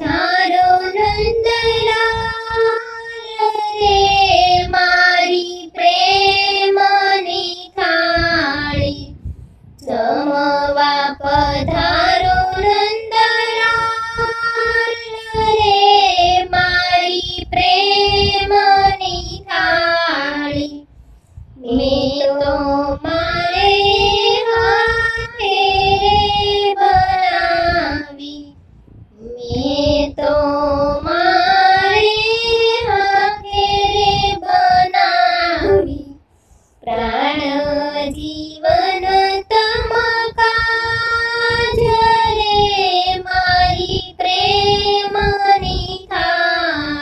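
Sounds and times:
high voice singing devotional song: 0.0s - 47.0s.

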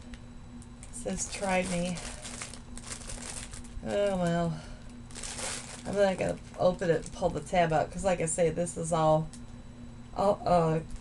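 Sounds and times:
plastic packaging crinkling: 0.7s - 8.0s.

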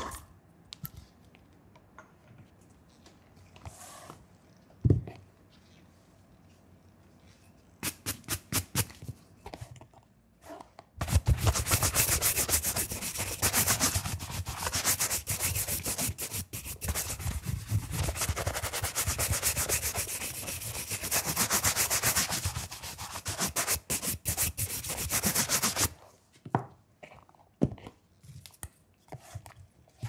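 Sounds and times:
shoe brush strokes on leather: 11.1s - 25.9s.

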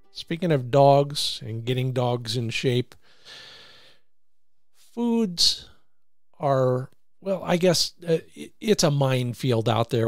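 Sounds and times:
man speaking: 0.2s - 3.0s, 4.8s - 5.8s, 6.4s - 10.0s
man breathing: 3.0s - 4.2s.

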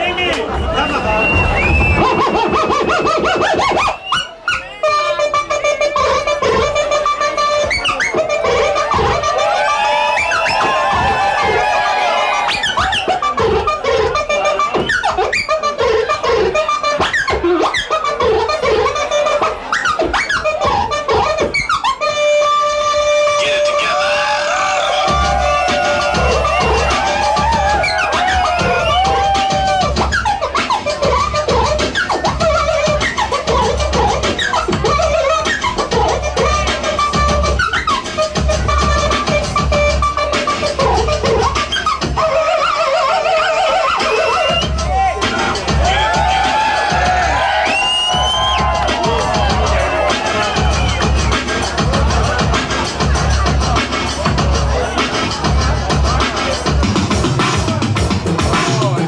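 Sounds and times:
deep bass beat: 0.0s - 4.2s, 5.0s - 42.4s, 44.2s - 59.0s
turntable scratching: 0.0s - 59.0s.

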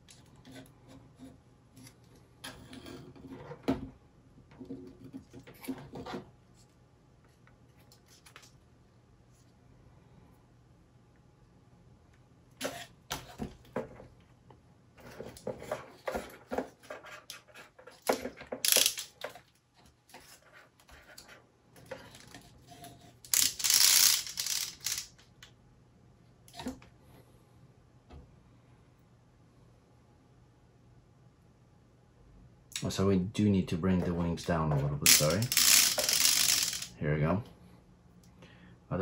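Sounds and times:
wooden parts clicking and knocking: 17.8s - 19.5s, 35.1s - 36.9s.

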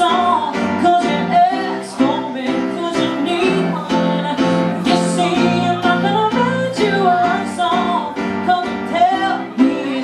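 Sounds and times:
piano: 0.0s - 10.0s
woman singing pop ballad: 0.0s - 10.0s.

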